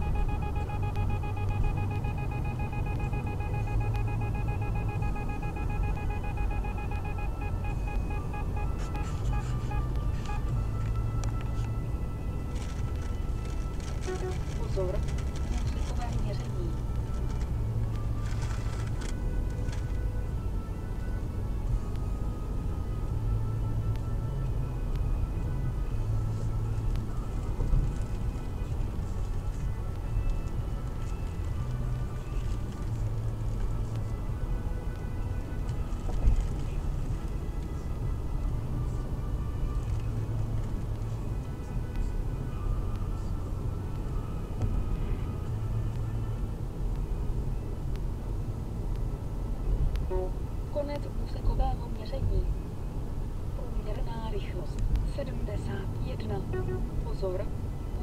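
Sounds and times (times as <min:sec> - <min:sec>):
car road and engine rumble: 0:00.0 - 0:58.0
quiet music: 0:00.0 - 0:58.0.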